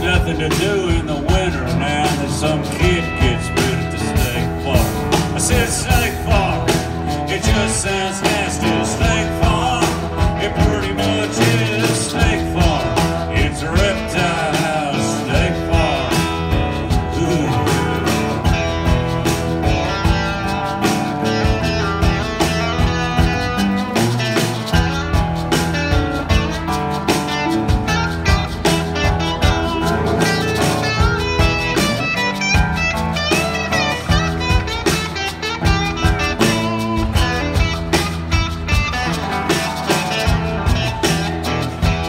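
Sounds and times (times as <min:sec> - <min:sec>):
blues-rock band playing: 0:00.0 - 0:42.0
drums keeping a steady beat: 0:00.0 - 0:42.0.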